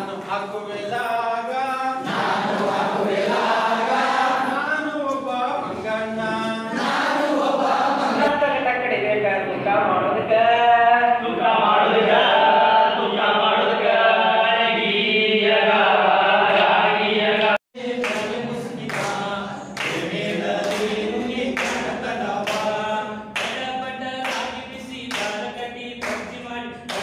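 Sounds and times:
men singing without instruments: 0:00.0 - 0:08.3, 0:10.4 - 0:27.0
hand claps: 0:17.4 - 0:27.0.

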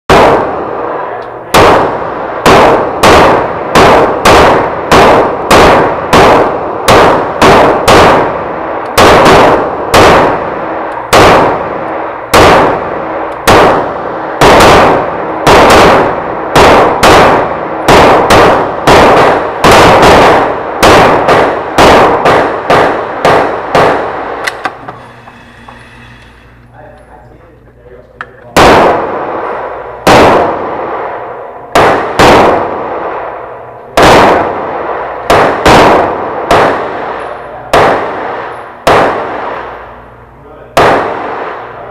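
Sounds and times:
pistol shots echoing indoors: 0:00.1 - 0:24.8, 0:28.4 - 0:41.9.

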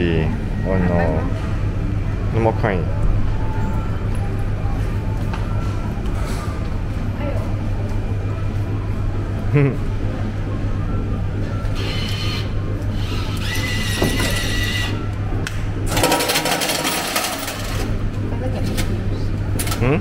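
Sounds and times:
tokens clattering into metal tray: 0:15.9 - 0:17.8.

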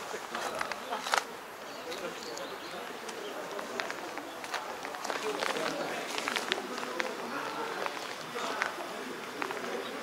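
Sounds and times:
indistinct voices outdoors: 0:00.0 - 0:10.0
footsteps on pavement: 0:01.9 - 0:09.9.

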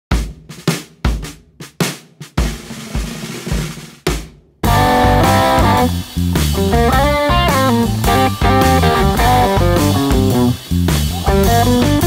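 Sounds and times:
kick and snare drum hits: 0:00.1 - 0:10.5
electric guitar sustained notes: 0:04.7 - 0:06.0, 0:06.6 - 0:10.6.

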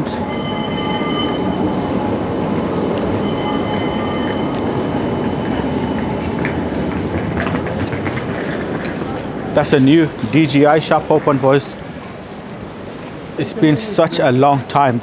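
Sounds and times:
high steady chord of tones: 0:00.0 - 0:06.9
tram rumbling past: 0:00.0 - 0:15.0.

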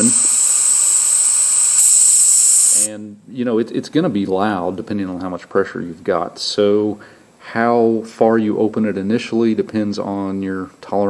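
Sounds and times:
compressed air hissing from valve: 0:00.0 - 0:02.9.

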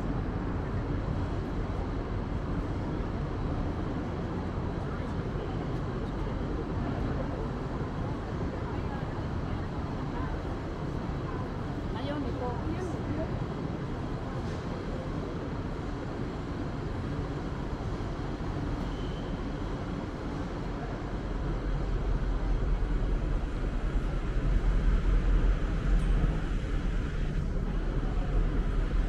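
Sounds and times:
city and harbour noise: 0:00.0 - 0:29.0.

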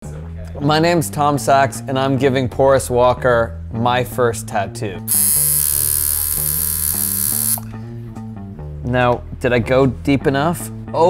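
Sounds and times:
tattoo machine buzzing: 0:05.1 - 0:07.7.

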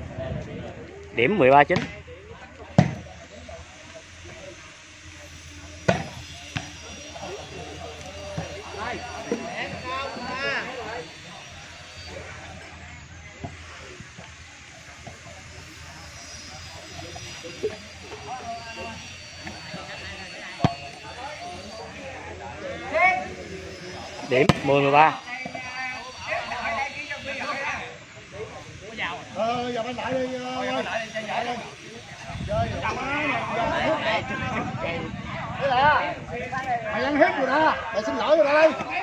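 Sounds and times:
onlookers chatting: 0:00.0 - 0:39.0.

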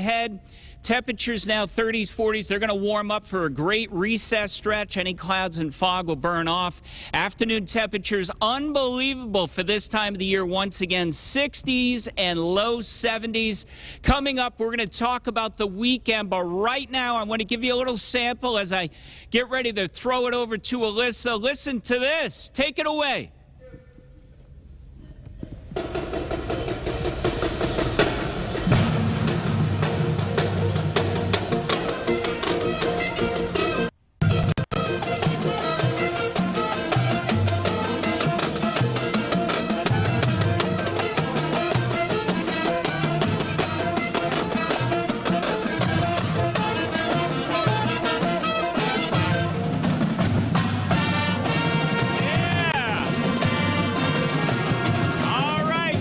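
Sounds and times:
drum strikes: 0:25.5 - 0:56.0
school band playing: 0:25.8 - 0:56.0.

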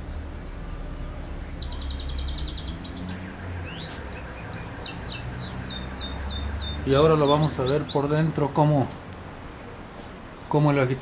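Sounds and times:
bird singing: 0:00.0 - 0:08.6.

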